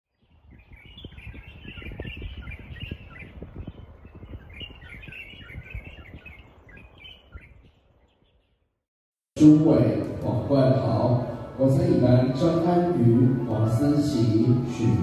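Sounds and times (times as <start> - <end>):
birds chirping: 0.1 - 8.8.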